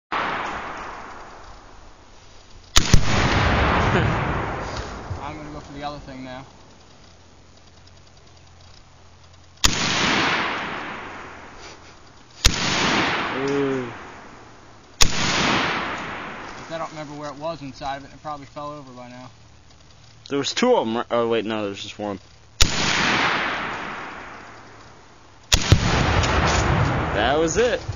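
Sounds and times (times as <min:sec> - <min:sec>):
rifle shot: 0:00.1 - 0:01.8, 0:02.8 - 0:05.6, 0:09.6 - 0:11.8, 0:12.4 - 0:16.8, 0:22.6 - 0:27.9
rolling rumble: 0:00.1 - 0:27.9
hiss: 0:00.2 - 0:06.4, 0:09.5 - 0:14.2
explosive target boom: 0:02.8 - 0:05.6, 0:25.5 - 0:27.9.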